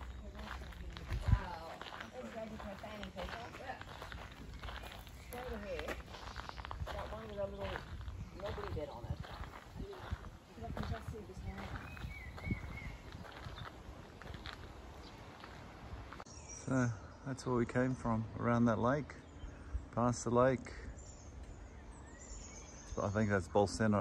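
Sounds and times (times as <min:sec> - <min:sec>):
wind rumble on microphone: 0:00.0 - 0:02.1, 0:03.0 - 0:16.2
faint voices talking: 0:00.0 - 0:12.1
footsteps on gravel: 0:00.0 - 0:16.3.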